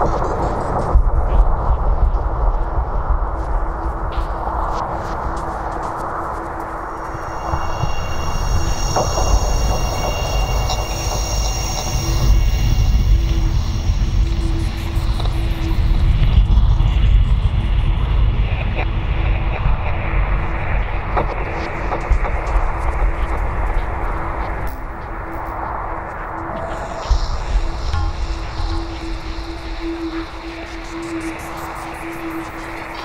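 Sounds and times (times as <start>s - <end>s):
wind-like noisy wash: 0.0s - 33.0s
deep rumbling drone: 6.8s - 32.6s
high shimmering tones: 7.1s - 14.2s.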